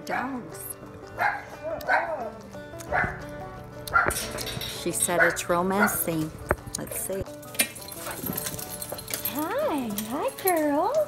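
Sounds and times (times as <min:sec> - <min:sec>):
dogs barking: 0:01.0 - 0:06.3, 0:07.6 - 0:09.3.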